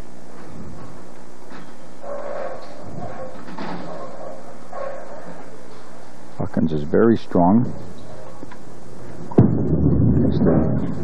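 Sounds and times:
bowling ball rolling: 9.3s - 11.0s.

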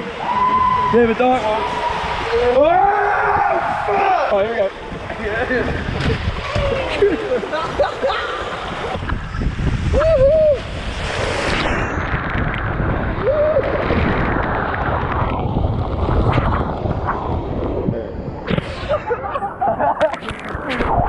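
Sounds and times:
water rushing down slide: 0.0s - 21.0s
person whooping: 9.9s - 10.7s, 13.2s - 13.8s.

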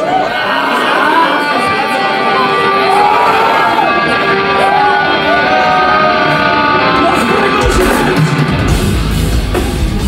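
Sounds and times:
crowd shouting: 0.0s - 10.0s
heavy metal band playing: 0.0s - 10.0s
electric guitars ringing: 0.8s - 10.0s.

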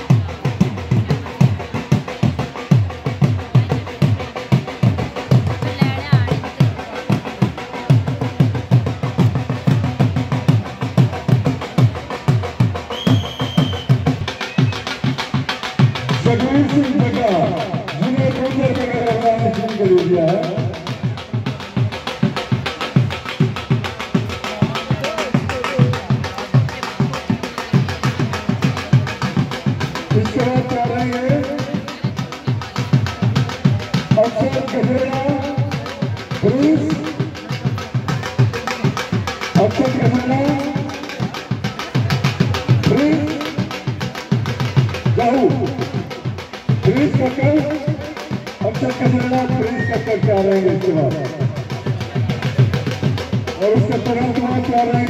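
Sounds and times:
dhol drums beating: 0.0s - 55.0s.

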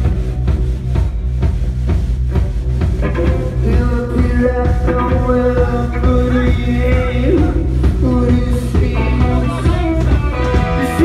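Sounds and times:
bass guitar: 0.0s - 11.0s
drums beating: 0.0s - 11.0s
electric guitar: 0.0s - 11.0s.

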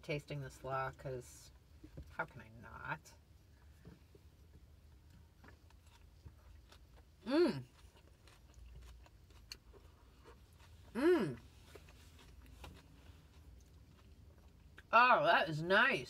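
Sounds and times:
person chewing with crunching: 3.6s - 14.9s
person humming mmm: 7.2s - 7.7s, 10.9s - 11.5s.

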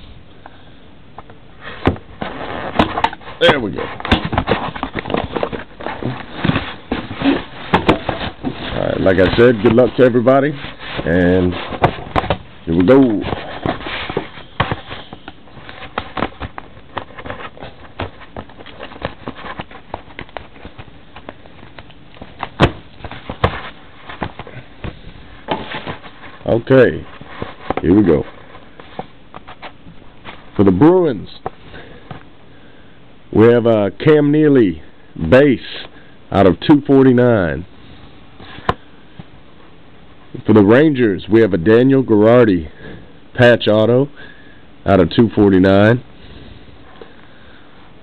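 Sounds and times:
cardboard scraping: 1.6s - 30.8s.

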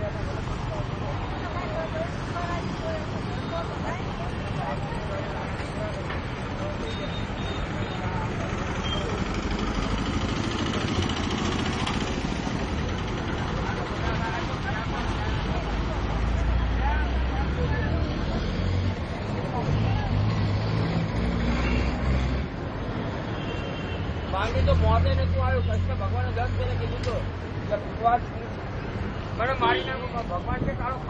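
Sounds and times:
passing vehicle engines: 0.0s - 31.0s.

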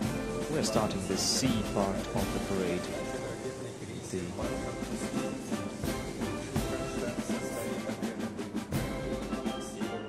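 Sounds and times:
band music with drum beat: 0.0s - 10.0s.

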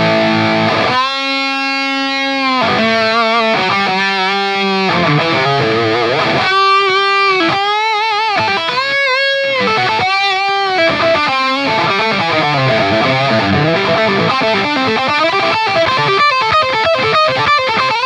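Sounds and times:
distorted electric guitar lead: 0.0s - 18.0s.

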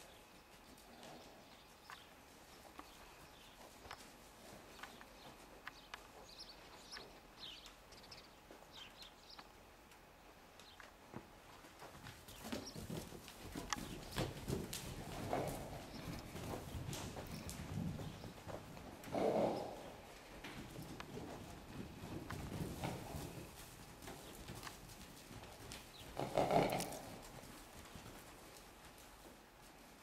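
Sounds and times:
hoofbeats on soft dirt: 0.0s - 30.0s.

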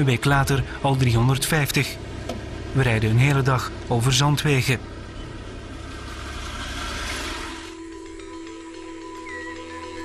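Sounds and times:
vehicle driving past on dirt: 5.1s - 7.8s
soft music with held notes: 7.7s - 10.0s.

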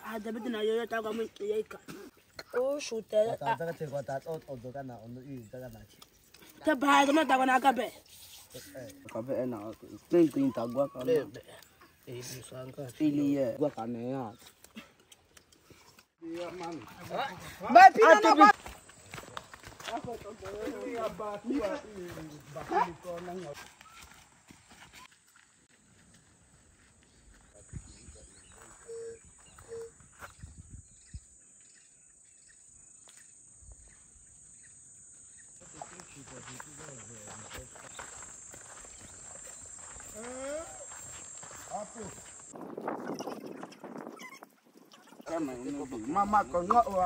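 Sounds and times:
light footsteps on dirt path: 0.0s - 34.0s, 35.6s - 43.3s, 45.3s - 47.0s
men calling in distance: 6.6s - 14.4s, 16.2s - 24.1s, 35.6s - 42.5s, 45.0s - 47.0s.

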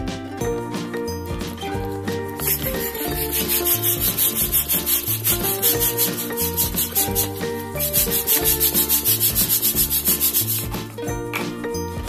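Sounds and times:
background music: 0.0s - 12.0s
balloon pump hissing air: 2.3s - 10.9s.

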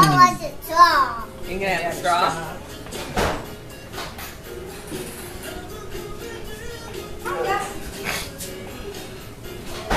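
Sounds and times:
faint background music: 0.0s - 9.9s.

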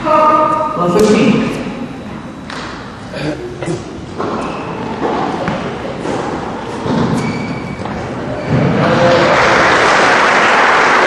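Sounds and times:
murmur of the hall: 0.0s - 11.0s.

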